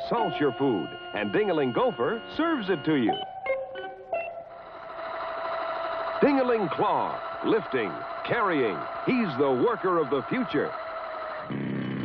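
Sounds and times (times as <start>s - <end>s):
toy motor whirring: 0.1s - 3.0s, 4.6s - 12.0s.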